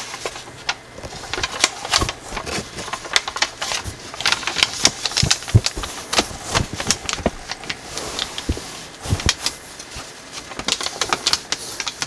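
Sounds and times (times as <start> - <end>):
foil paper crinkling: 0.0 - 12.0.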